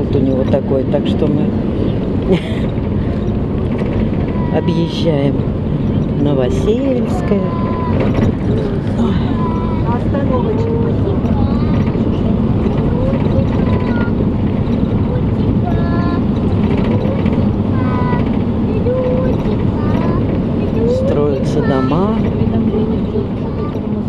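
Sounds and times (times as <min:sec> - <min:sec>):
bus engine and road noise: 0:00.0 - 0:24.0
voices talking: 0:00.0 - 0:24.0.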